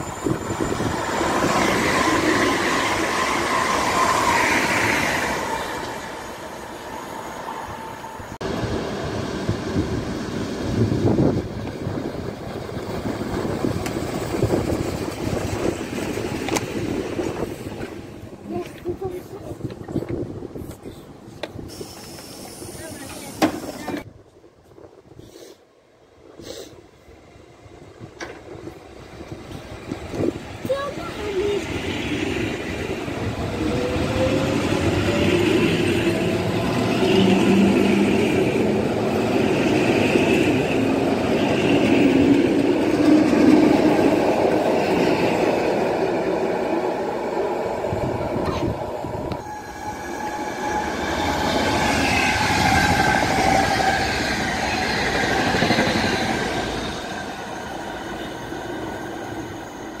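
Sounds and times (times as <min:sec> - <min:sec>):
passing train electronic whine: 0:00.0 - 0:18.4, 0:27.0 - 1:00.0
wheels rumbling on rails: 0:08.1 - 0:24.9, 0:27.6 - 1:00.0.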